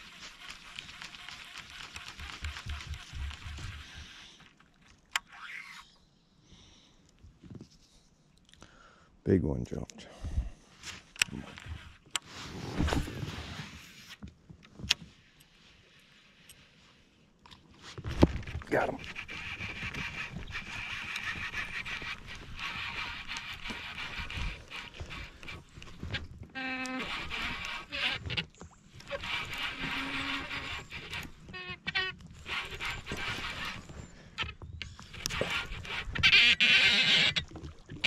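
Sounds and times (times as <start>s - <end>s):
fishing reel and line working: 0.0s - 4.4s, 5.2s - 6.0s, 19.0s - 28.4s, 29.0s - 37.5s.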